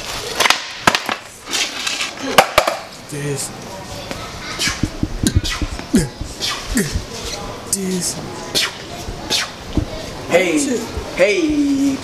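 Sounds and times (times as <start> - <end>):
skateboard deck clacking on floor: 2.4 - 2.9.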